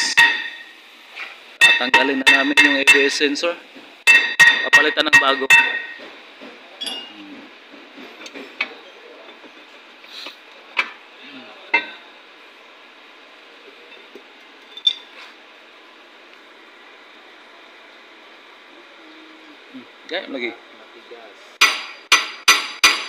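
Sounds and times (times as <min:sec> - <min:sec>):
hand tools clinking on metal: 0:06.8 - 0:07.1
sharp knocks: 0:21.6 - 0:23.0.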